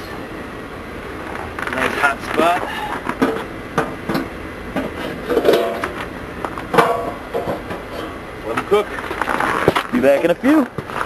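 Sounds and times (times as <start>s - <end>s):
tools and coal knocking: 6.7s - 7.9s.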